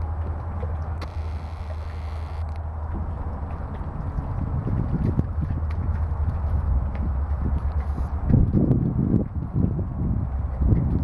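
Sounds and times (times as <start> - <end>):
steady low rumble: 0.0 - 11.0
hooves knocking on concrete: 2.9 - 11.0.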